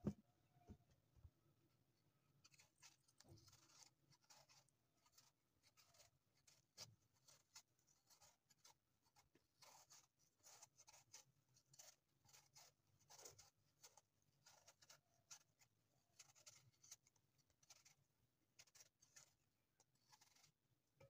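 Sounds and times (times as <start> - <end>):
knife scraping apple peel: 2.4 - 20.9.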